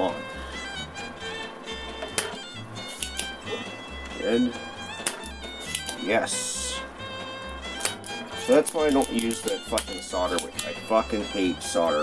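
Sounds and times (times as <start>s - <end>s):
background music: 0.0s - 12.0s
desoldering pump snapping: 1.9s - 4.2s, 4.9s - 6.2s, 7.4s - 11.1s.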